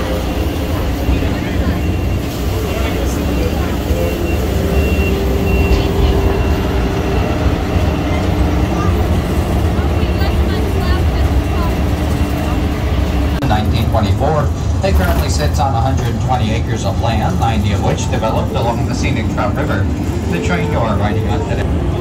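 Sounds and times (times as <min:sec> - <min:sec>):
miniature train rumbling: 0:00.0 - 0:22.0.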